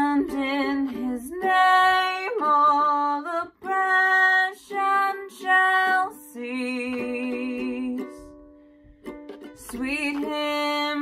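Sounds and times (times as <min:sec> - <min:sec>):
woman singing a carol: 0:00.0 - 0:08.3, 0:09.6 - 0:11.0
strummed ukulele: 0:00.0 - 0:11.0.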